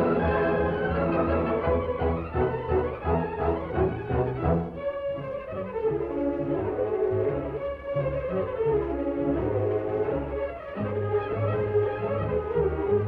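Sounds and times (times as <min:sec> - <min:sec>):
orchestral music: 0:00.0 - 0:13.0.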